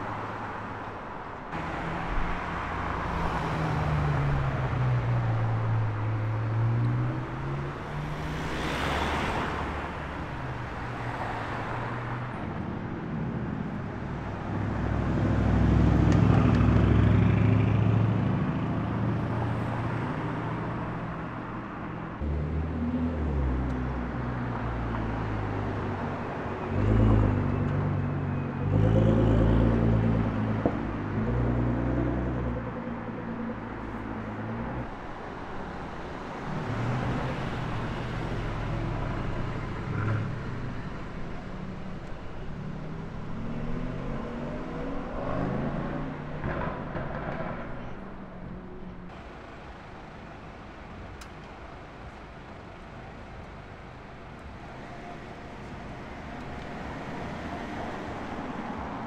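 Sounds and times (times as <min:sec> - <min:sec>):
cars driving past: 0:00.0 - 0:59.0.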